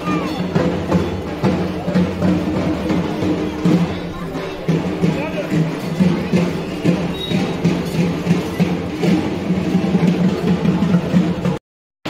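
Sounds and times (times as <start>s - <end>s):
drums beaten with sticks: 0.0s - 11.6s.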